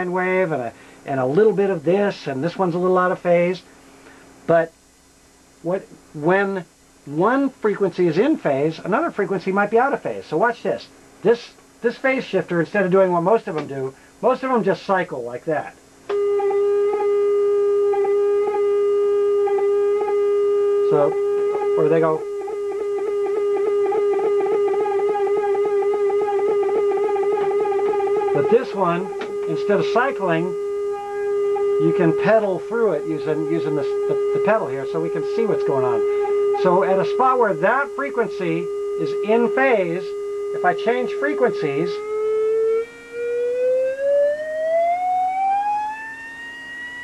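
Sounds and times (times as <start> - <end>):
faint steady hum: 0.0 - 47.0
phased electronic tone: 16.1 - 47.0.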